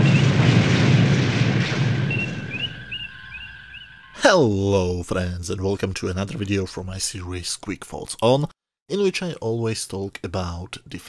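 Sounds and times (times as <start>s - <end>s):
explosion sound effect: 0.0s - 4.3s
short rising chirps: 2.0s - 4.2s
steady high tone: 2.3s - 5.0s.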